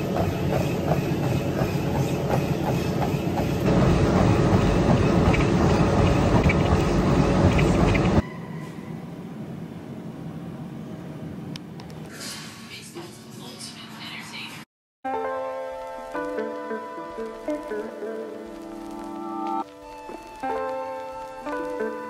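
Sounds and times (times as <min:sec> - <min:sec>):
rhythmic footfalls: 0:00.0 - 0:08.2, 0:16.1 - 0:22.0
treadmill belt and motor rumbling: 0:00.0 - 0:08.2.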